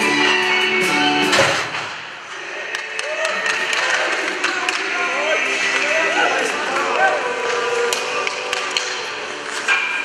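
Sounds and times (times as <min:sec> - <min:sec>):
background music: 0:00.0 - 0:10.0
people talking and calling: 0:00.0 - 0:10.0
hockey sticks and pucks tapping ice: 0:01.7 - 0:10.0.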